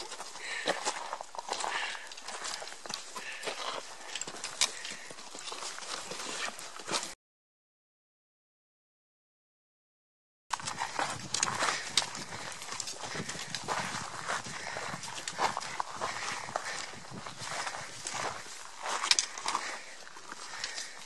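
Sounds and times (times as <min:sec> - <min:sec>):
footsteps crunching on gravel: 0:00.0 - 0:07.2, 0:10.5 - 0:21.0
trekking poles clicking on rock: 0:00.0 - 0:07.2, 0:10.5 - 0:21.0.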